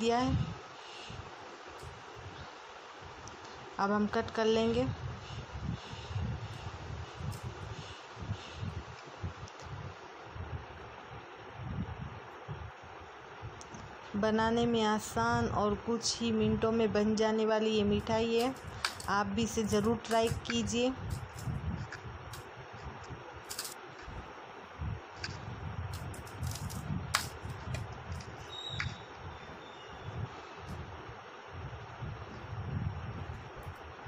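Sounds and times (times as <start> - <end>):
faint steady hiss: 0.0 - 34.0
rumbling and buffeting on microphone: 0.0 - 34.0
handling noise: 18.0 - 24.4, 25.1 - 29.2.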